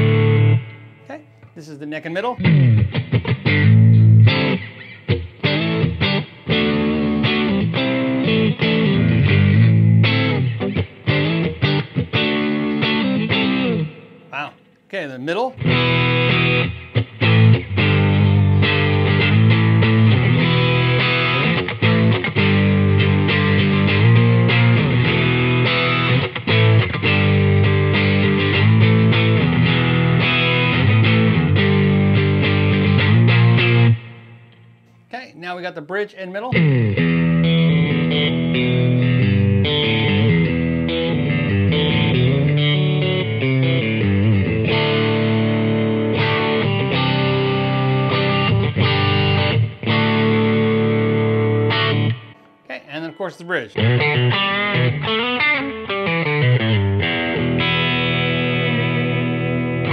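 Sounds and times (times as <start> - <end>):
overdriven electric guitar playing: 0.0 - 14.9, 15.6 - 35.1, 36.5 - 59.9.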